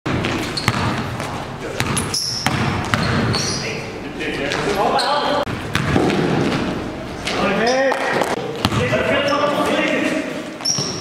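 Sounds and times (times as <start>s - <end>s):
basketball bouncing on court: 0.1s - 3.6s, 5.5s - 9.2s, 10.6s - 11.0s
sneakers squeaking on floor: 0.1s - 11.0s
players' voices: 3.3s - 5.6s, 6.3s - 10.6s.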